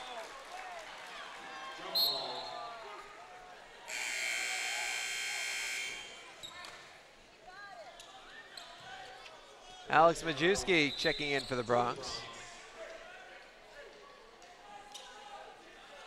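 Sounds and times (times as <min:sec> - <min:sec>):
gym horn blast: 0:03.9 - 0:06.2.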